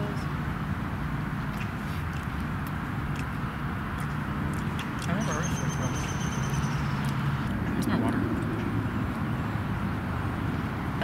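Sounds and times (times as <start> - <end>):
low outdoor background rumble: 0.0 - 11.0.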